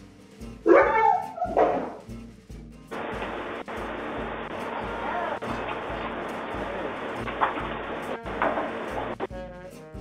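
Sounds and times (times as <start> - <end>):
background music with beat: 0.0 - 10.0
dog barking: 0.6 - 2.0.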